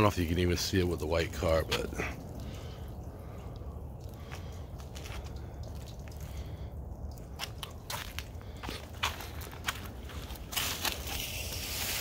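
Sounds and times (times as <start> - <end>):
steady low rumble: 0.9 - 11.2.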